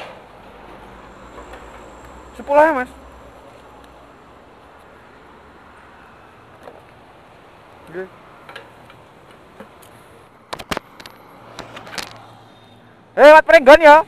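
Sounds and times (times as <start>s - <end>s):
sharp clicks and knocks: 10.5s - 12.3s.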